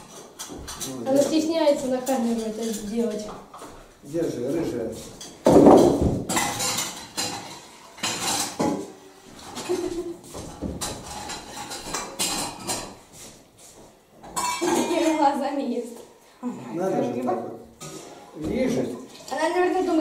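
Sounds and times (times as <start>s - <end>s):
cutlery clinking against dishes: 0.0s - 3.8s, 5.0s - 13.1s, 14.2s - 15.3s, 17.8s - 19.3s.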